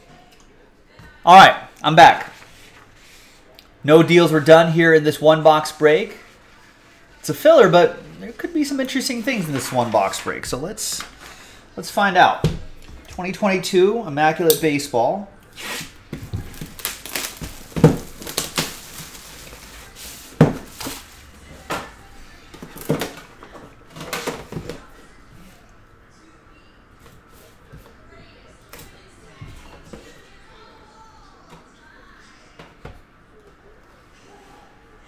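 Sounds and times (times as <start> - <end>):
plastic sleeve handling rustles: 15.6 - 21.3
plastic wrap crackling and ripping: 15.8 - 21.2.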